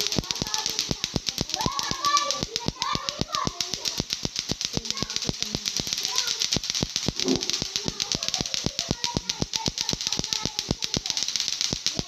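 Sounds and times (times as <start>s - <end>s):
plastic clacker balls clacking: 0.0s - 12.0s.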